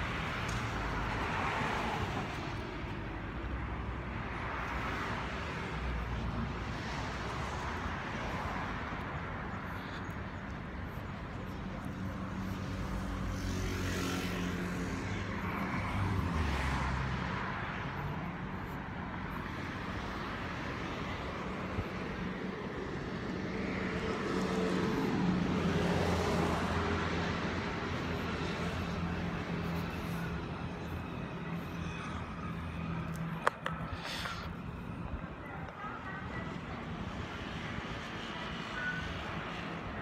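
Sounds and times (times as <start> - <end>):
road traffic passing: 0.0 - 40.0.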